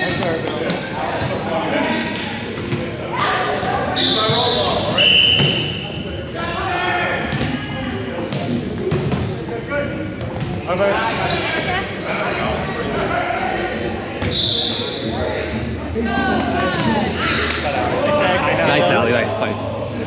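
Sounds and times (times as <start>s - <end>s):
sneakers squeaking on floor: 0.0s - 1.4s, 2.0s - 6.1s, 8.2s - 15.7s, 16.6s - 18.2s.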